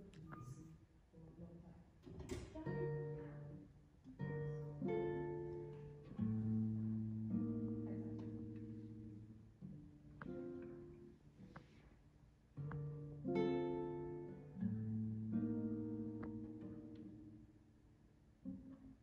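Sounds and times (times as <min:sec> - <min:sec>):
nylon-string guitar plucked chords: 0:02.6 - 0:11.8, 0:12.5 - 0:19.0.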